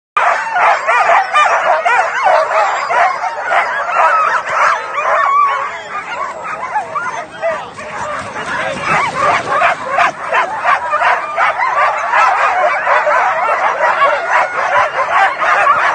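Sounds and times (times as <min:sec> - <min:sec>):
sled dogs yelping and barking: 0:00.2 - 0:15.9.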